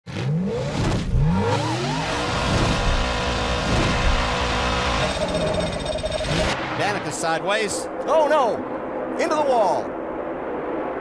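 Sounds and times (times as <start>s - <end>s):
race car engines revving: 0.1s - 5.5s.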